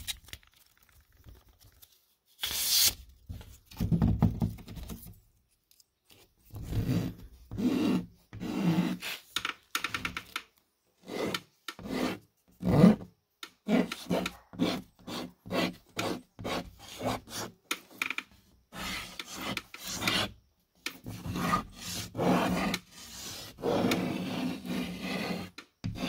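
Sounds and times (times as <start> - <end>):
chalk scratching on drywall: 6.8 - 9.4, 11.0 - 13.0, 13.6 - 18.0, 18.7 - 26.0.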